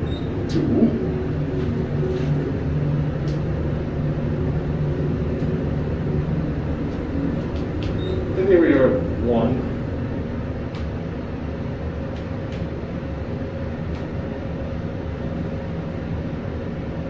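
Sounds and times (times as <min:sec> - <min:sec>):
elevator hum: 0:00.0 - 0:17.0.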